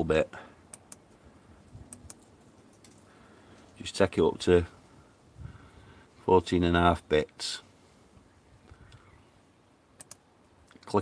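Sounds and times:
low background hiss: 0:00.0 - 0:11.0
faint computer mouse clicks: 0:01.9 - 0:03.0, 0:10.0 - 0:10.2.

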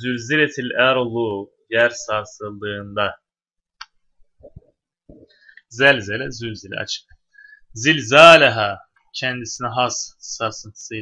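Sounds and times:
man lecturing: 0:00.0 - 0:03.2, 0:05.6 - 0:11.0
faint breath sounds: 0:05.2 - 0:05.7, 0:07.2 - 0:07.8.

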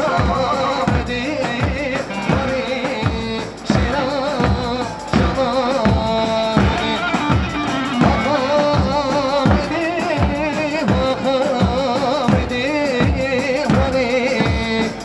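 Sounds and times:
person singing ornamented melody: 0:00.0 - 0:15.0
steady drum beat: 0:00.0 - 0:15.0.

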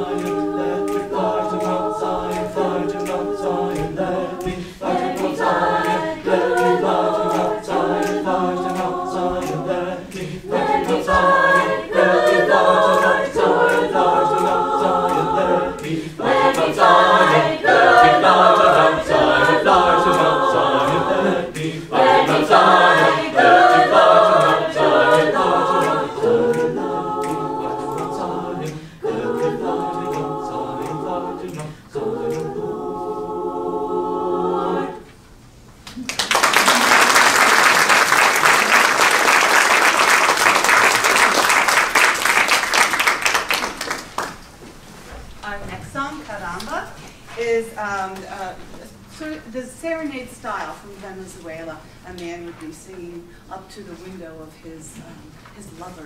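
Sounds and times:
a cappella choir singing: 0:00.0 - 0:35.4, 0:36.5 - 0:44.0.

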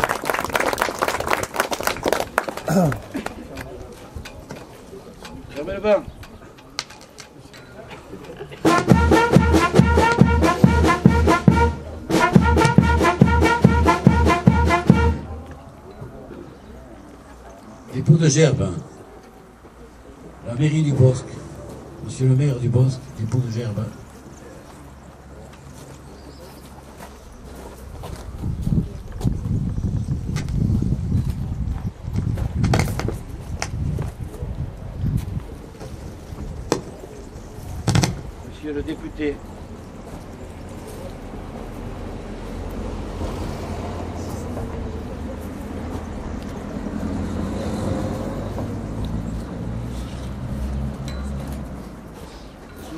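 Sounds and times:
steady drum beat: 0:08.6 - 0:15.3
brass music: 0:08.6 - 0:15.4
wind rumbling on microphone: 0:27.9 - 0:36.7.

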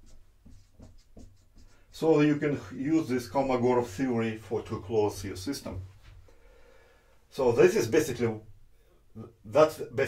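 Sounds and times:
marker scratching on whiteboard: 0:00.0 - 0:02.0.

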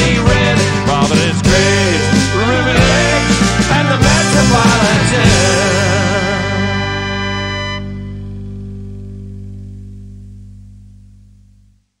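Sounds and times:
guitars and bass final chord: 0:00.0 - 0:11.9.

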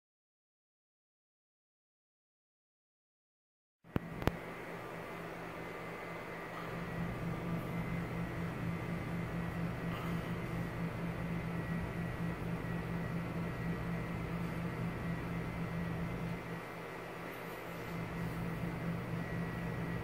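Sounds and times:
faint high whine: 0:03.9 - 0:20.0
low mechanical hum: 0:03.9 - 0:20.0.

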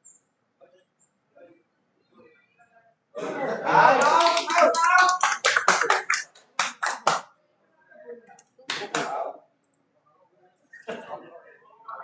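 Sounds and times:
hand clapping: 0:04.0 - 0:07.3, 0:08.7 - 0:09.2.

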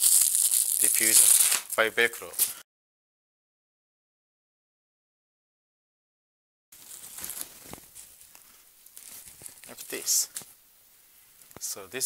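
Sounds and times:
fabric rustling and crinkling: 0:06.8 - 0:10.6.

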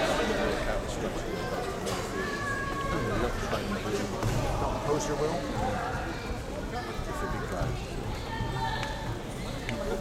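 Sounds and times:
voices echoing in a hall: 0:00.0 - 0:10.0.

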